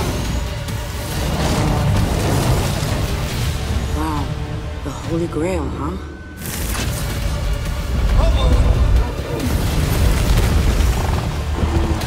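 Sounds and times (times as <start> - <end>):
trailer music: 0.0 - 12.0.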